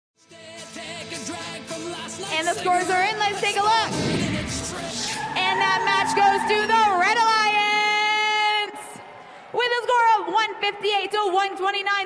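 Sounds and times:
announcer speaking excitedly: 0:02.3 - 0:04.0, 0:05.2 - 0:08.8, 0:09.6 - 0:12.0.

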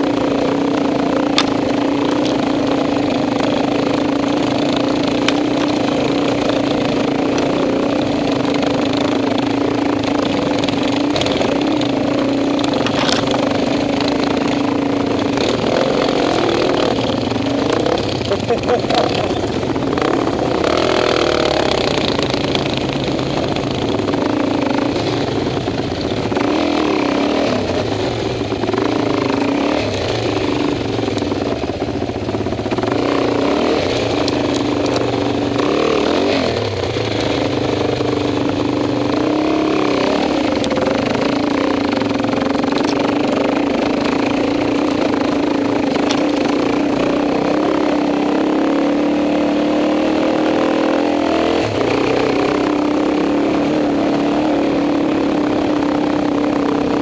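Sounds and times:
dirt bike engine running: 0:00.0 - 0:57.0
clatters and knocks: 0:12.6 - 0:14.3.

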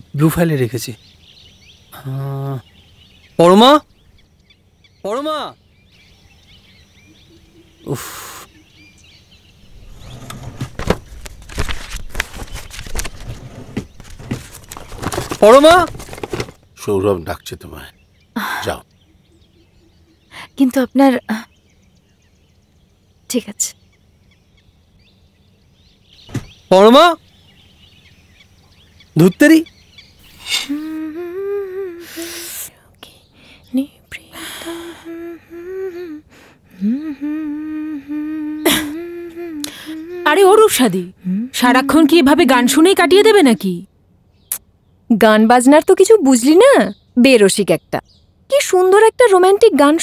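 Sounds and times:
faint bird chirps: 0:00.0 - 0:11.7, 0:16.8 - 0:50.0
papers and objects handled on desk: 0:10.1 - 0:16.6
woman humming: 0:30.4 - 0:32.7, 0:33.7 - 0:42.4.

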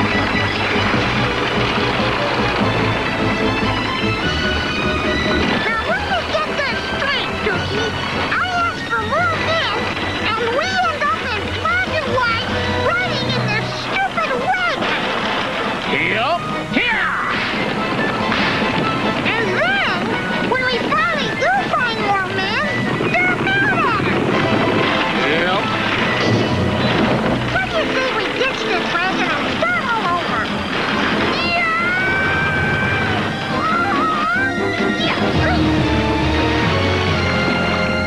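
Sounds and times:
cartoon background music: 0:00.0 - 0:38.0
cartoon squeals and cries: 0:31.4 - 0:35.6.

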